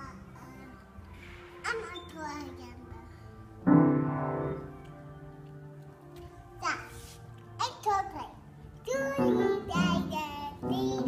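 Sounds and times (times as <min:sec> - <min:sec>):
piano notes: 0:00.0 - 0:11.0
child singing: 0:07.6 - 0:11.0.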